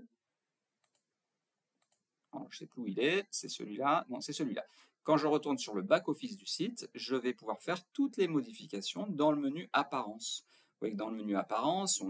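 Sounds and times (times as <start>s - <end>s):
computer mouse clicks: 0.8s - 1.1s, 1.8s - 2.1s.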